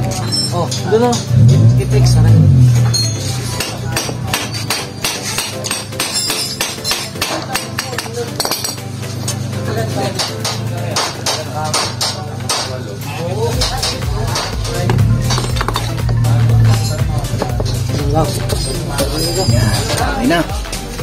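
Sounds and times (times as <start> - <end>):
background music: 0.0 - 21.0
hammer knocking on metal: 13.6 - 18.0.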